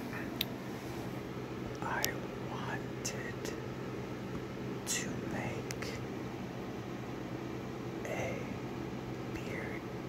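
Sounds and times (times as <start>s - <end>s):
low background hum: 0.0s - 10.0s
man whispering slowly: 1.8s - 3.6s, 4.8s - 6.1s, 8.0s - 8.6s, 9.3s - 10.0s.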